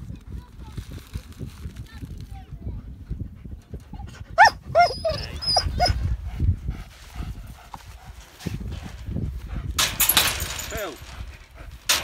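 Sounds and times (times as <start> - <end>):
dog whining: 4.4 - 6.0.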